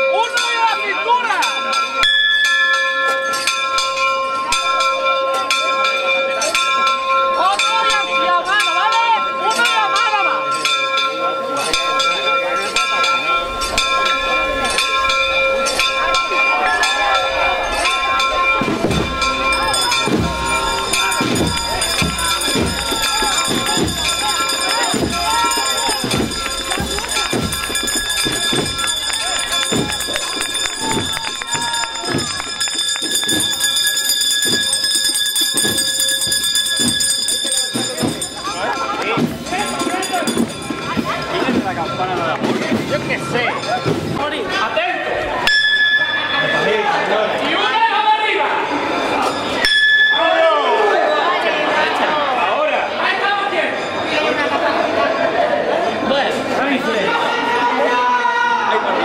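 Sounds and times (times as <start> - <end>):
church bells ringing: 0.0 - 44.1, 45.2 - 51.9
crowd voices: 0.0 - 59.0.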